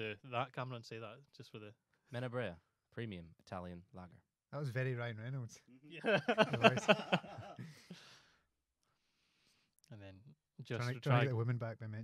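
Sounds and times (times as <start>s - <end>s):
man laughing: 6.0s - 7.9s.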